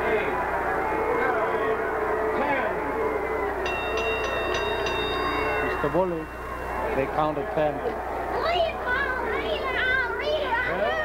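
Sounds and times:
excited voices calling out: 0.1 - 11.0.

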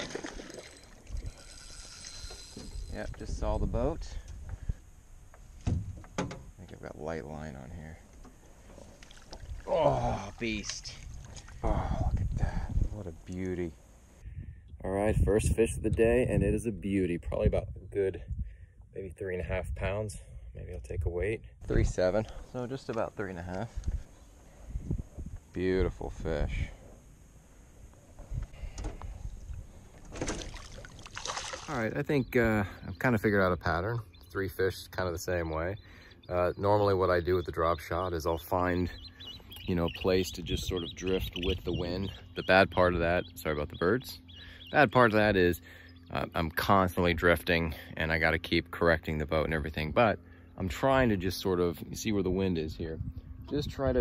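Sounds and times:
fish thrashing and splashing: 0.0 - 2.3, 8.9 - 9.7, 30.1 - 31.7.

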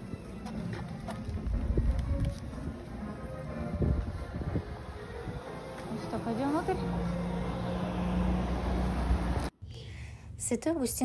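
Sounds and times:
vehicle rumble with hum: 3.8 - 9.5.

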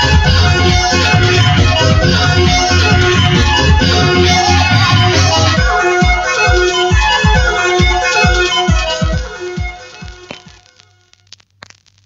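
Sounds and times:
breakbeat track with kick drums: 0.0 - 12.0
vinyl surface clicks and crackle: 9.6 - 12.0.

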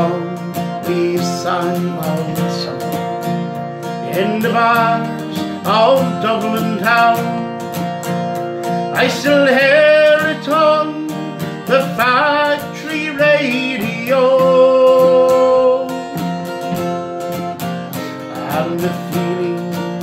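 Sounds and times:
man singing a slow ballad: 0.0 - 7.8, 8.8 - 16.6, 18.0 - 20.0
strummed acoustic guitar: 0.0 - 20.0.

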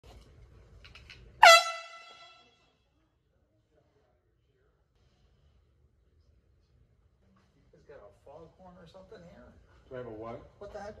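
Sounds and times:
air horn blast: 1.4 - 2.6.

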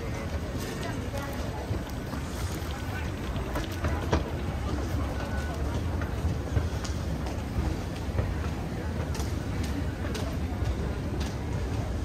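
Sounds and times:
hubbub of distant voices: 0.0 - 12.0.

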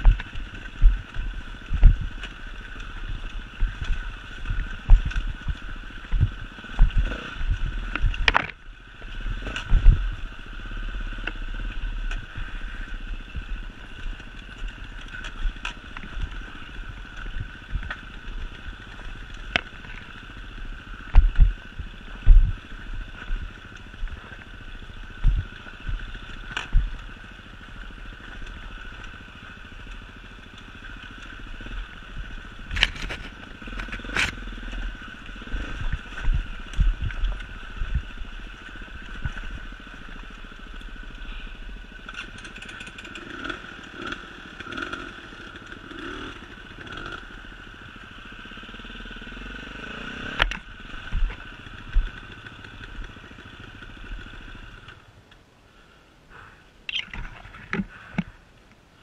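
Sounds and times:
knocks and clatter over stones: 0.0 - 10.1, 13.9 - 27.1, 29.9 - 40.1
motorcycle engine running: 0.0 - 55.1.

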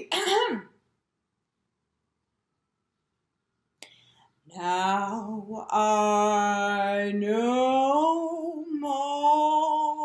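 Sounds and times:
woman clearing her throat: 0.0 - 0.8.

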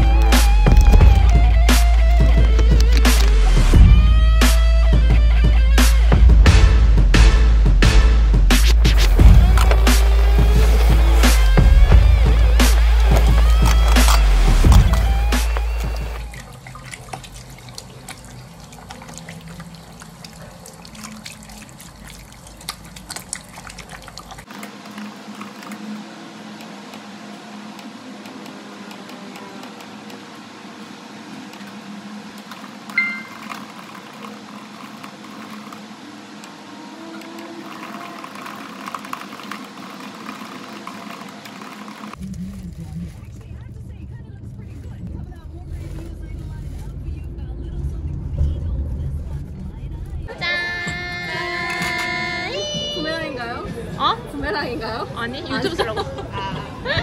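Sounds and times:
tap water running over hands: 0.0 - 3.8, 8.9 - 42.2
car interior rumble: 8.6 - 19.0, 42.2 - 53.5
voices: 9.0 - 57.0.

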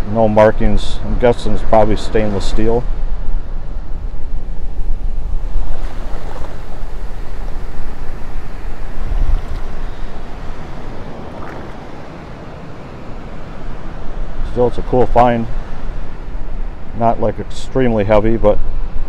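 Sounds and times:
beach surf: 0.0 - 19.0
wind buffeting microphone: 0.0 - 19.0.

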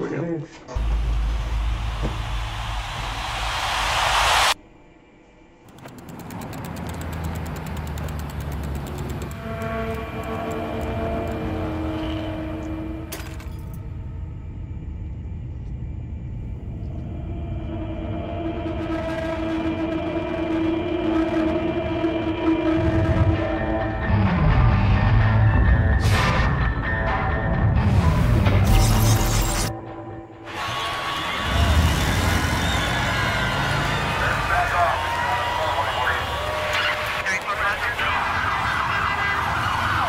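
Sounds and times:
low ominous synth drone: 0.8 - 3.6, 8.8 - 28.6
crowd cheering: 0.8 - 4.6, 30.5 - 40.0.

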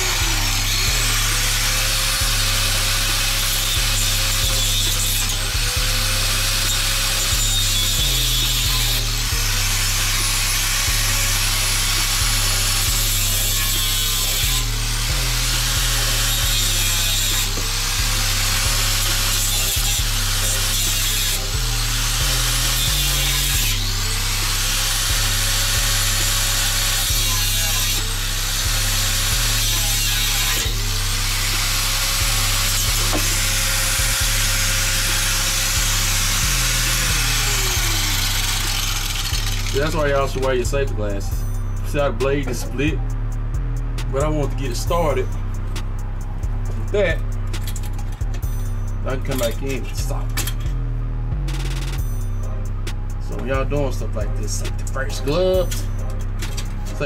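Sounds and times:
angle grinder cutting metal pipe: 0.0 - 43.1, 44.0 - 50.8, 51.4 - 57.0
music with bass line: 0.0 - 57.0.

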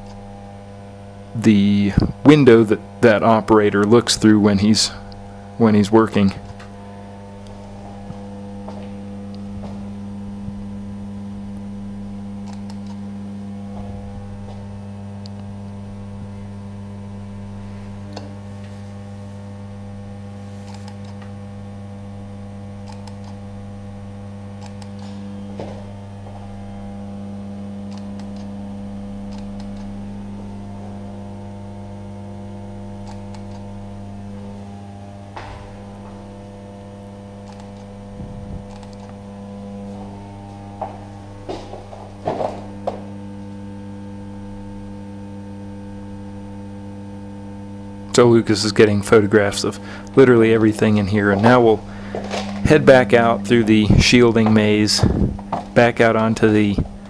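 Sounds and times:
electrical mains hum: 0.0 - 57.0
faint high steady tones: 49.1 - 57.0.

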